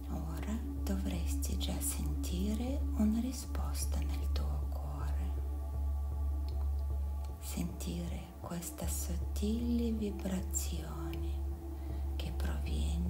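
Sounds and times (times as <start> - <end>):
meditation music drone: 0.0 - 13.0.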